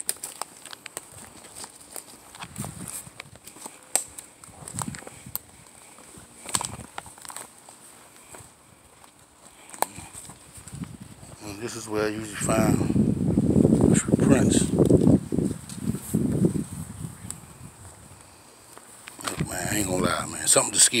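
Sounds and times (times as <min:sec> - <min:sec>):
sticks snapping underfoot: 0:00.0 - 0:05.8, 0:06.4 - 0:07.6, 0:09.0 - 0:10.9, 0:18.2 - 0:19.5
footsteps crunching dry leaves: 0:00.0 - 0:12.4, 0:14.7 - 0:20.3.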